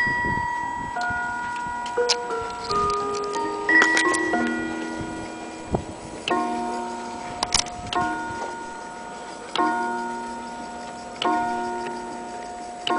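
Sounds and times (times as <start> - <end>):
clock striking gong: 0.0 - 12.9
sharp clicks: 7.4 - 8.1.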